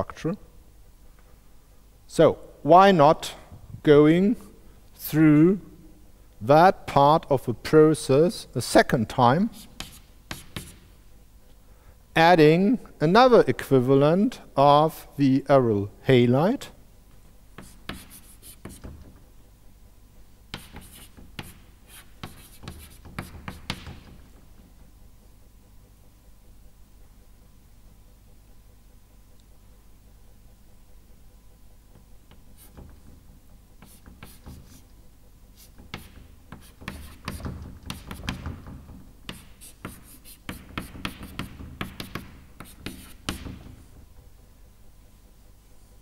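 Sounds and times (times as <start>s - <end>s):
chalk writing on blackboard: 9.4s - 10.9s, 17.6s - 19.2s, 20.5s - 24.2s, 32.3s - 33.2s, 33.8s - 34.9s, 35.5s - 43.9s.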